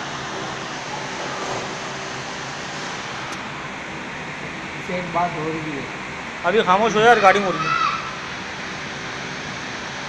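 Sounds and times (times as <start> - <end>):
continuous hiss: 0.0 - 10.0.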